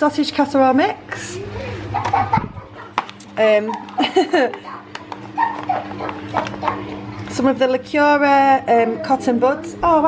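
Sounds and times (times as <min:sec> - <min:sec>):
whining vocal sounds: 0:01.1 - 0:03.0.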